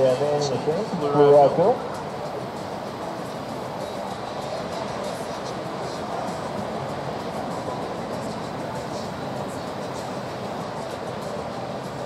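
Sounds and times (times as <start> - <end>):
ocean surf breaking: 0.0 - 12.0.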